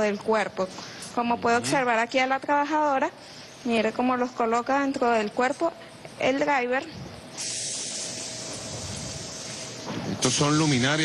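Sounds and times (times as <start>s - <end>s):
steady hiss: 7.0s - 11.0s.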